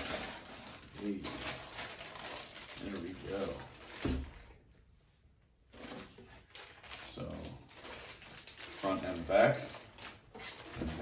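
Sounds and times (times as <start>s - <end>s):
plastic packaging rustling: 0.0s - 4.6s, 5.7s - 11.0s.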